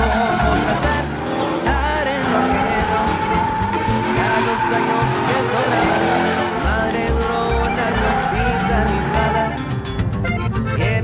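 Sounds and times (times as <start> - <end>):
background music with a beat: 0.0 - 11.0
truck tyres squealing: 0.0 - 11.0.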